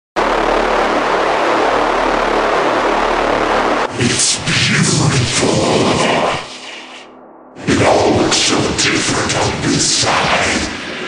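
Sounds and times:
loud rushing noise with rumble: 0.2 - 11.0.

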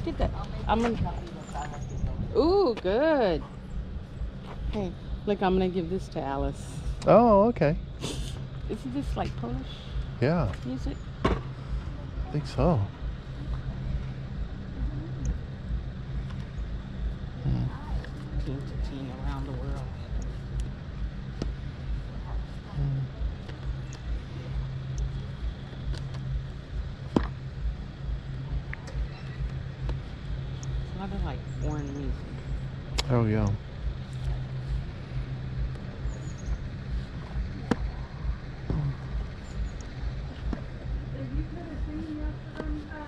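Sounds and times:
low mechanical motor hum: 0.0 - 43.0
low outdoor rumble: 0.0 - 43.0
soft low thumps: 0.0 - 43.0
faint voices: 4.6 - 15.9, 17.2 - 20.6, 21.9 - 25.8, 36.8 - 43.0.

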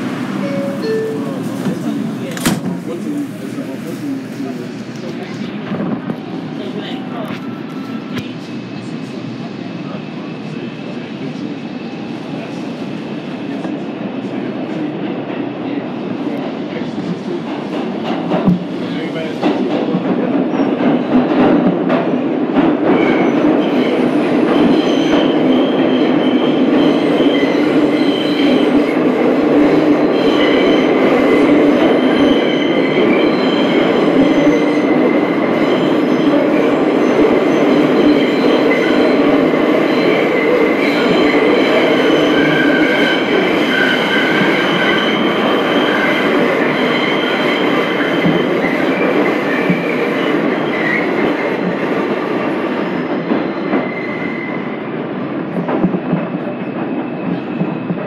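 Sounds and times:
rumble of wheels on rail: 0.0 - 58.0.

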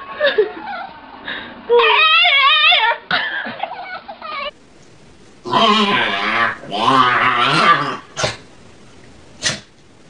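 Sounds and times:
dog growling: 5.4 - 8.4.

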